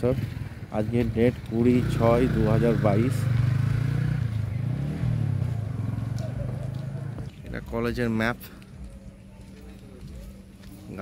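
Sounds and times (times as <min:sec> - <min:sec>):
motorcycle engine running: 0:00.0 - 0:08.1.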